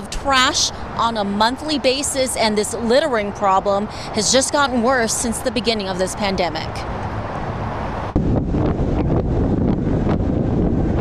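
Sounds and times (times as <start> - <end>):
freeway traffic noise: 0.0 - 11.0
road noise from moving vehicle: 0.0 - 11.0
wind buffeting microphone: 0.0 - 11.0.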